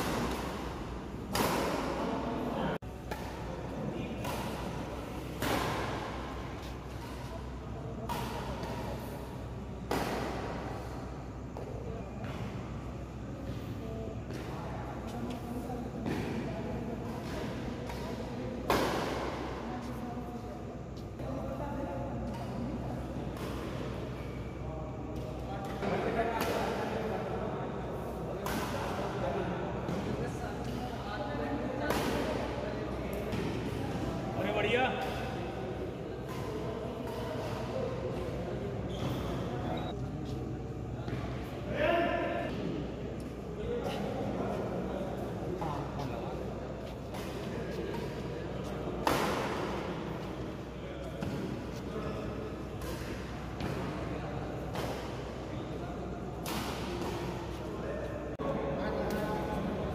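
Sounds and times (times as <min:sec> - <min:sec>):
rackets hitting shuttlecock: 0:03.0 - 0:10.8, 0:56.4 - 0:57.5.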